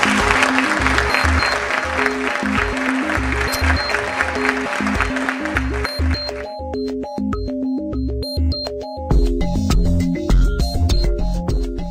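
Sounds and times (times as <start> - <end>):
audience applauding: 0.0 - 6.7
music with pulsing bass: 0.0 - 11.9.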